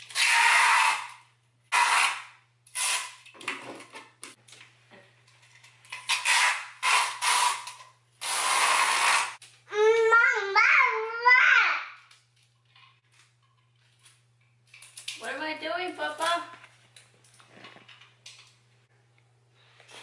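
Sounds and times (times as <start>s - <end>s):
adhesive tape pulled off roll: 1.7s - 3.3s, 6.1s - 9.4s.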